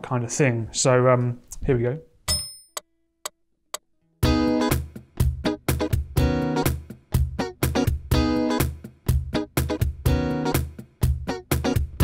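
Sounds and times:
electric guitar riff: 4.2s - 6.8s, 7.4s - 8.8s.

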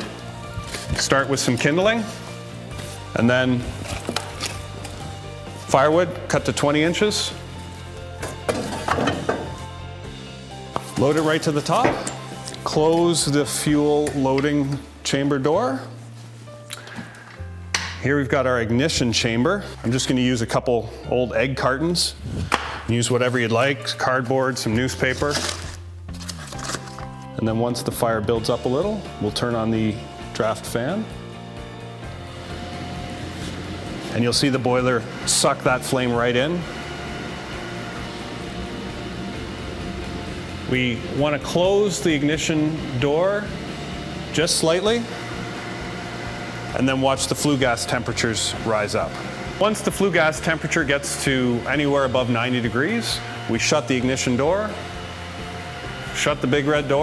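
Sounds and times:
soft background music: 0.0s - 57.0s
boiler draft fan humming: 28.7s - 57.0s.

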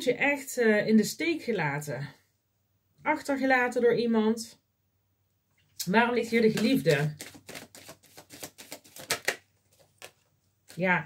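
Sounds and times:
cards being shuffled: 6.4s - 11.0s.

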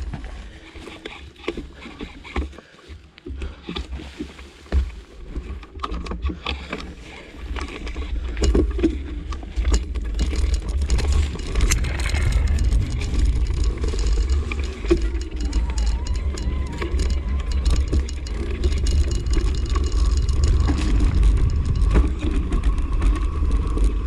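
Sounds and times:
crunches and rattles of gear: 0.0s - 24.0s
trail rumble: 0.0s - 24.0s
wind buffeting microphone: 10.0s - 24.0s.

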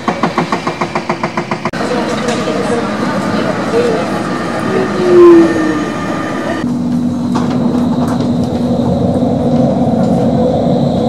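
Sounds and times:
loud pitched tram sound: 0.0s - 11.0s
street noise: 0.0s - 11.0s
tram running hum: 0.0s - 11.0s.

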